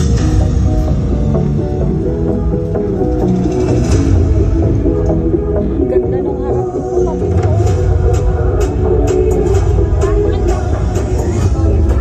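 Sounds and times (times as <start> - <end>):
loud music with deep bass: 0.0 - 12.0.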